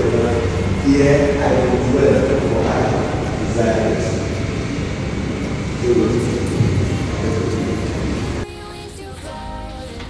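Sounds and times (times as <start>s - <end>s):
man speaking: 0.0s - 4.5s, 5.7s - 7.9s
background music: 0.0s - 10.0s
room echo noise: 0.0s - 10.0s.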